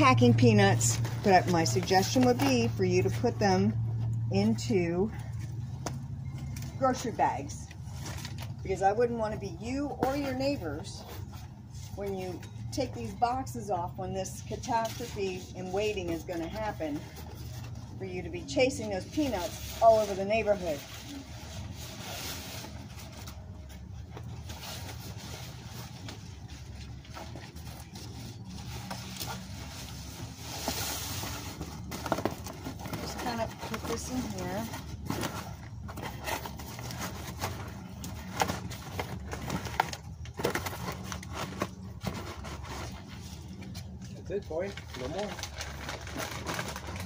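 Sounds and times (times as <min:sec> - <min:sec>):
cardboard scraping and rustling: 0:24.2 - 0:43.7.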